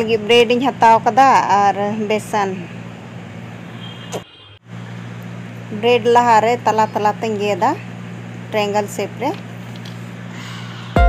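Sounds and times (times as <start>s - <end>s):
low background hum: 0.0s - 3.8s, 4.7s - 11.0s.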